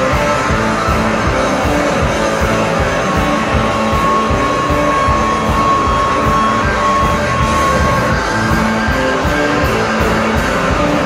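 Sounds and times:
electric guitar: 0:00.0 - 0:11.0
high held guitar note: 0:00.0 - 0:11.0
live rock band playing: 0:00.0 - 0:11.0.

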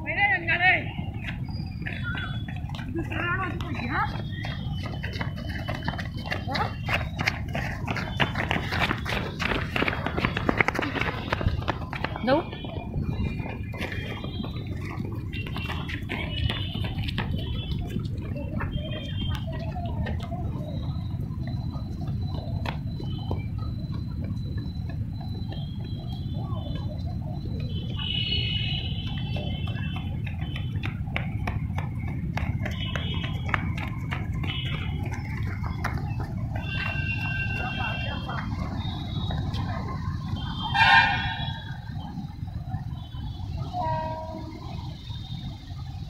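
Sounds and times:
runners' footsteps on concrete: 0:00.0 - 0:46.0
wind rumbling on microphone: 0:00.9 - 0:46.0.

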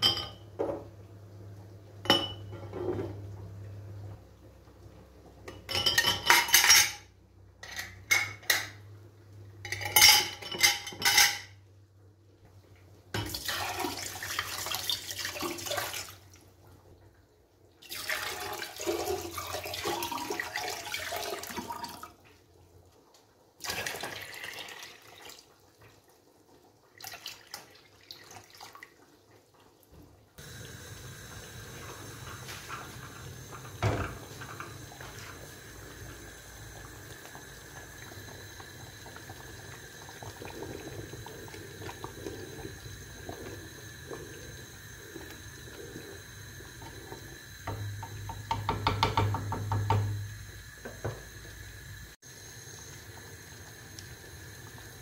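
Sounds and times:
glass jars clinking in metal pot: 0:00.0 - 0:00.4, 0:02.0 - 0:02.8, 0:05.5 - 0:08.8, 0:09.6 - 0:11.6
water pouring over jars: 0:13.2 - 0:16.4, 0:17.8 - 0:22.2, 0:23.6 - 0:25.5, 0:27.0 - 0:29.0, 0:30.4 - 0:49.5
steady hiss: 0:30.4 - 0:55.0
knock: 0:48.5 - 0:50.1.

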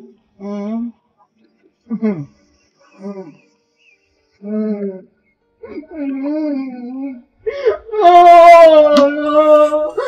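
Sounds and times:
woman crying and wailing: 0:05.6 - 0:10.0.

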